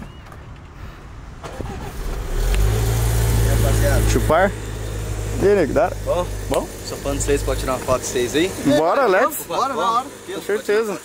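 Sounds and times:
car engine starting and idling: 1.4s - 11.0s.

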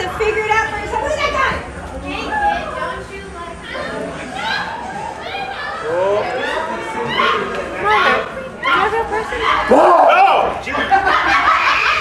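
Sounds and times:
excited voices talking: 0.0s - 12.0s.

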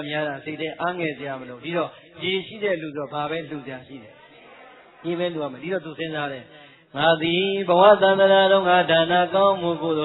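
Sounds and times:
man chanting in long tones: 0.0s - 4.1s, 5.0s - 10.0s.

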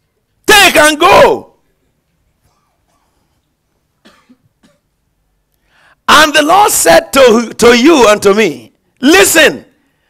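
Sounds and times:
man clearing throat: 2.4s - 3.3s, 4.0s - 5.0s.

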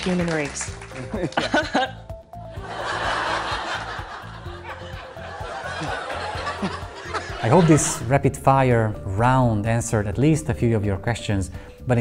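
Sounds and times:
background music: 0.0s - 12.0s
studio audience laughing: 1.0s - 8.1s.

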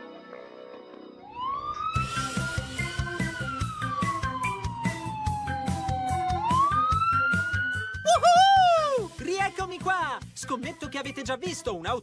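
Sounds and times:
police siren wailing: 1.2s - 9.0s
background music with steady beat: 1.9s - 12.0s.

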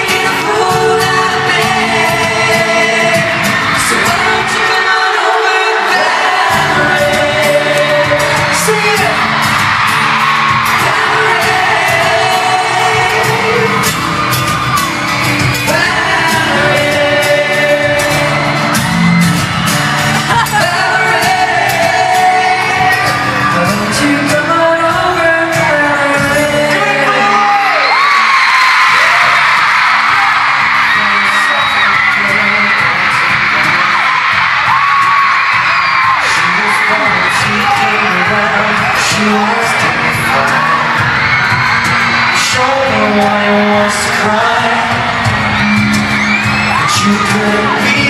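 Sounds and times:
boy band singing live: 0.0s - 48.0s
crowd screaming: 0.0s - 48.0s.

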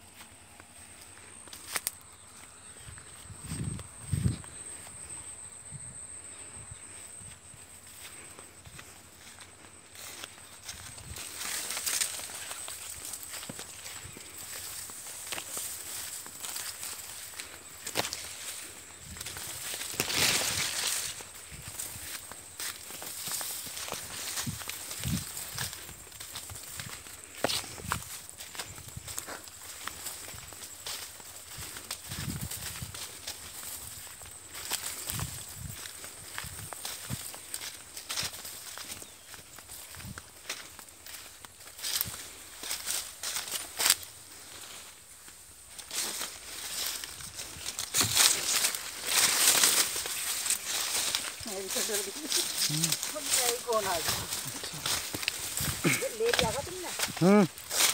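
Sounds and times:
footsteps on dry leaves: 0.0s - 5.1s, 7.1s - 57.9s.

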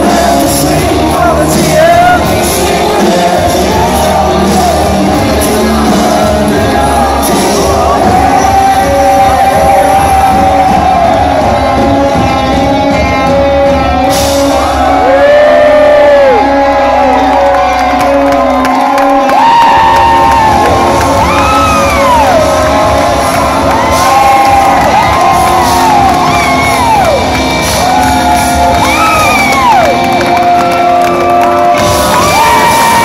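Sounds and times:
crowd cheering and whooping: 0.0s - 33.0s
live rock band playing: 0.0s - 33.0s.

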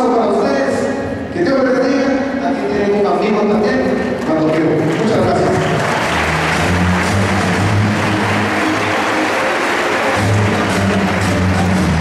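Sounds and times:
audience applauding: 4.2s - 12.0s.

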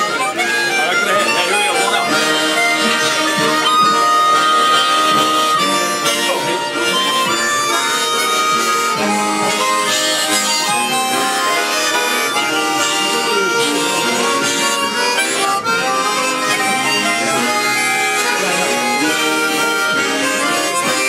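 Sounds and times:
harmonicas playing chords: 0.0s - 21.0s.

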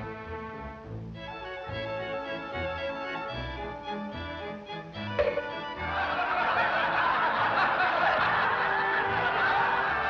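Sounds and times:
audience laughing: 5.5s - 10.0s.

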